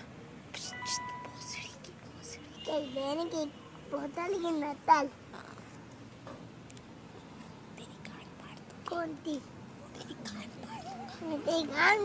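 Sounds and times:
child chattering: 0.6 - 3.5, 8.9 - 12.0.

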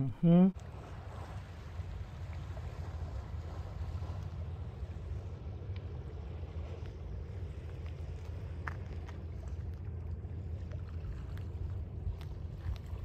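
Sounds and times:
small waves lapping: 0.1 - 13.0.

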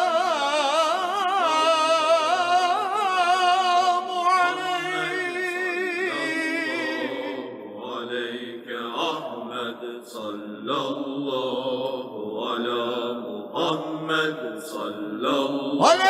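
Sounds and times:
person chanting a devotional hymn: 0.0 - 16.0.

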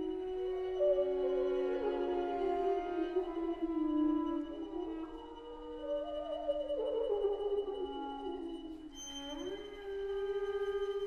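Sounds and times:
bassoon: 0.0 - 11.0
cello bowing: 0.0 - 11.0
clarinet: 0.0 - 11.0.

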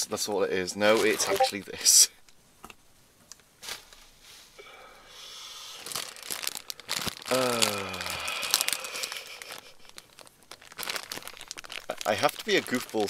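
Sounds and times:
plastic packaging crinkling: 5.8 - 13.0.

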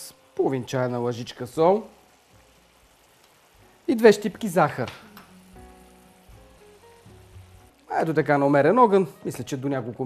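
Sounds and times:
sauce simmering in a pan: 0.0 - 9.3
soft background music: 0.0 - 10.0.

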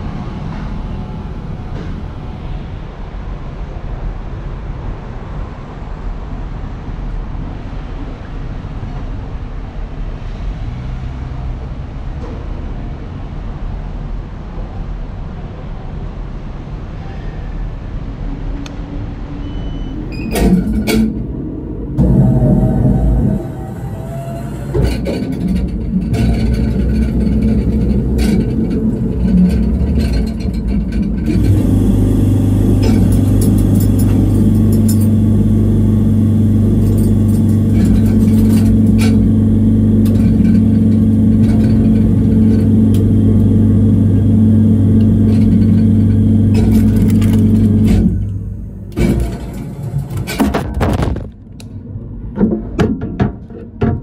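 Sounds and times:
vending machine hum: 19.4 - 52.8.

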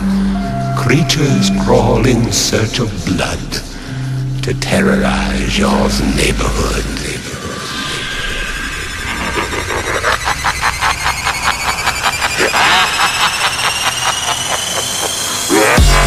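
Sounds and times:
deep bass: 0.0 - 12.3, 15.6 - 16.0
synth sweep rising in pitch: 5.5 - 16.0.

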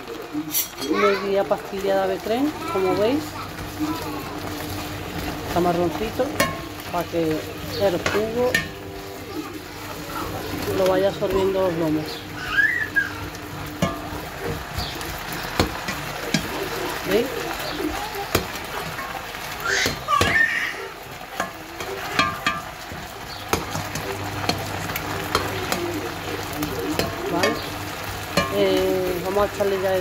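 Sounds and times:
meat sizzling in a pan: 0.0 - 30.0
metal spoon scraping a pan: 0.4 - 1.0, 21.4 - 29.8.

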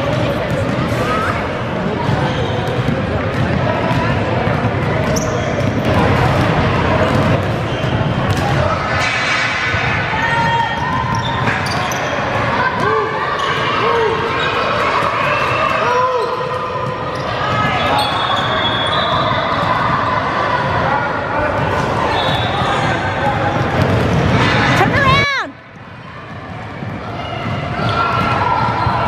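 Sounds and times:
echoing chatter of voices: 0.0 - 29.0
sneaker squeaks: 2.0 - 8.6, 10.1 - 20.0, 21.6 - 23.1.

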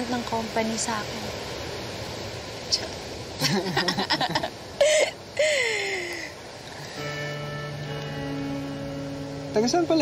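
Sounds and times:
soft held music chord: 6.9 - 10.0.

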